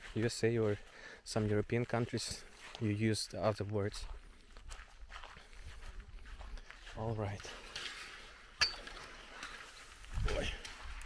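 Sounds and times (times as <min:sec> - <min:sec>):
footsteps on dry grass: 0:00.0 - 0:11.0.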